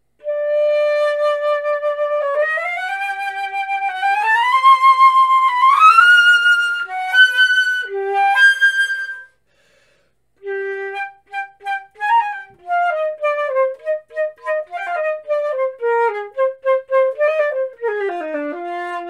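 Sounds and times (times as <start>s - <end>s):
solo flute playing: 0.2s - 9.4s, 10.4s - 19.0s.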